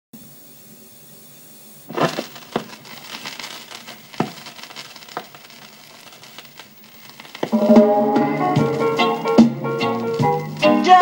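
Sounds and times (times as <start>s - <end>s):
faint steady hiss: 0.2s - 11.0s
vinyl crackle and pops: 1.9s - 11.0s.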